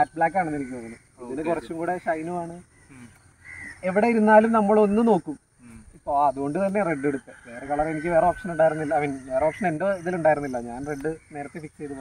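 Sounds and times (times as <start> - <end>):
man speaking: 0.0 - 3.2.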